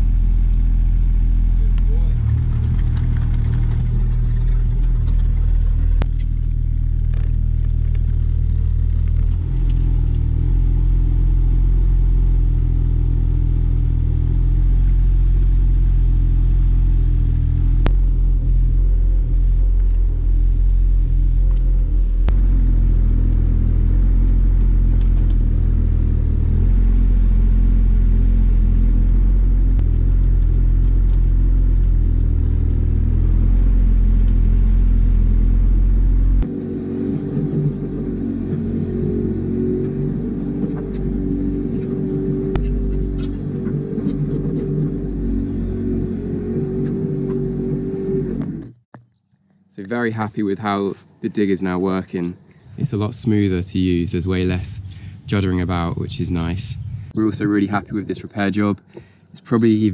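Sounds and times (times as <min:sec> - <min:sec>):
excavator diesel engine digging: 0:01.5 - 0:10.6.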